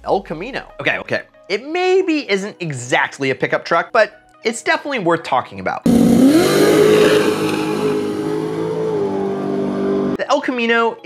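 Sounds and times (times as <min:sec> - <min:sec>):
drag car engine at full throttle: 0:05.9 - 0:10.2.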